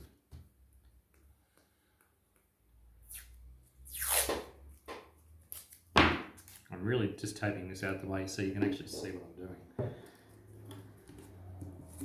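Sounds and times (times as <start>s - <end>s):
masking tape tearing off roll: 3.0s - 4.5s, 5.4s - 6.7s.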